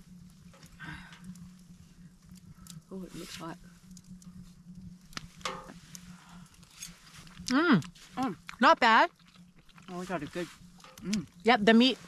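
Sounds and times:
person humming mm: 0:11.0 - 0:11.3.

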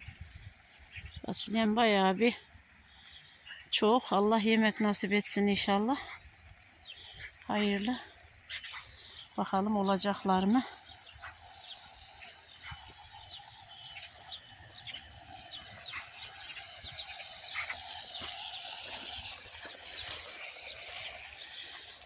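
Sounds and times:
faint outdoor background noise: 0:00.0 - 0:22.0
small birds chirping: 0:00.0 - 0:22.0.

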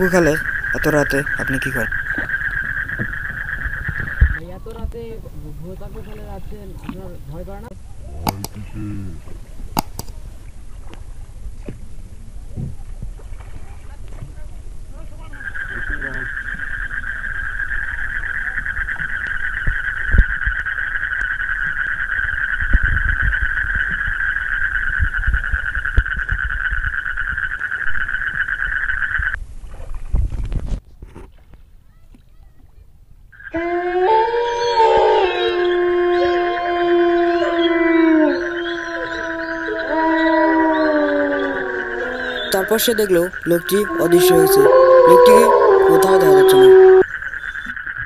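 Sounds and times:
eerie layered howling: 0:33.5 - 0:42.6, 0:43.8 - 0:47.0.

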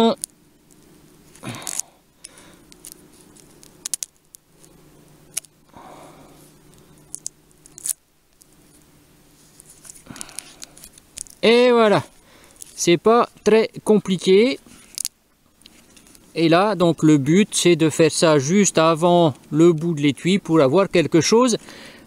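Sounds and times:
tape rubbing scratchily: 0:02.7 - 0:05.6, 0:06.4 - 0:11.6, 0:12.5 - 0:15.1.

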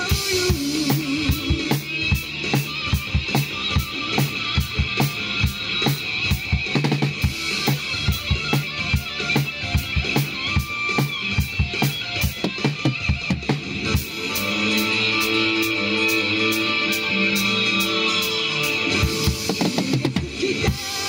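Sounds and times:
drum kit rock beat: 0:00.0 - 0:21.0
electric guitar music: 0:00.0 - 0:21.0.

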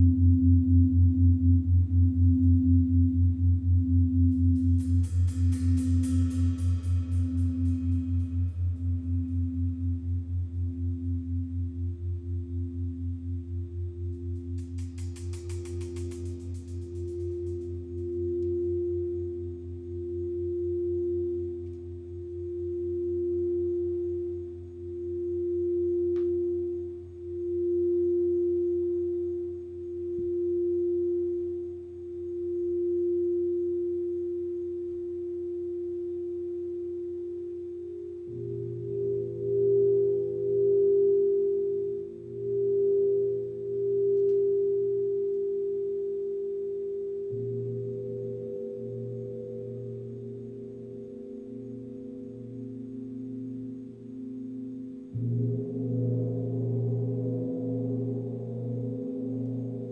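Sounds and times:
higher singing bowl tone: 0:00.0 - 0:59.9
low hum: 0:00.0 - 0:59.9
singing bowls ringing: 0:00.0 - 0:59.9.

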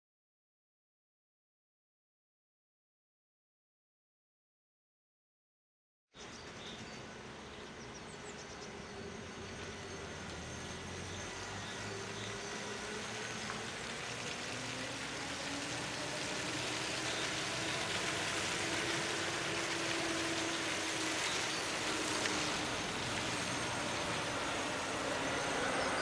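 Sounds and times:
truck driving slowly past: 0:06.2 - 0:26.0.

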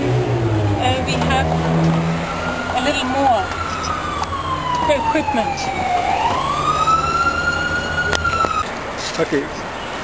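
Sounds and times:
siren wailing: 0:00.2 - 0:08.7.

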